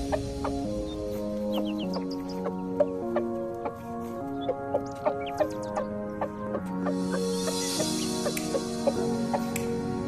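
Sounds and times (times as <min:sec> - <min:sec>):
background music of held chords: 0:00.0 - 0:10.0.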